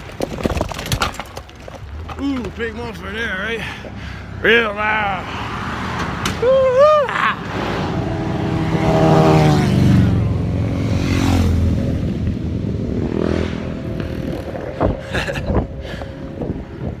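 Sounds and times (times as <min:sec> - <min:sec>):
vehicle driving past: 0:07.4 - 0:14.5.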